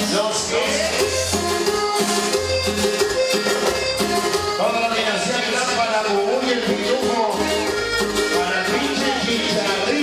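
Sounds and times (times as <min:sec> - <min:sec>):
live band playing cumbia: 0:00.0 - 0:10.0.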